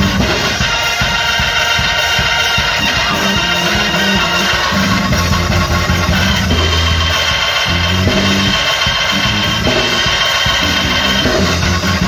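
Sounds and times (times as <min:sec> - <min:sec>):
band music: 0:00.0 - 0:12.0
bass notes: 0:00.0 - 0:12.0
drum kit: 0:00.0 - 0:12.0.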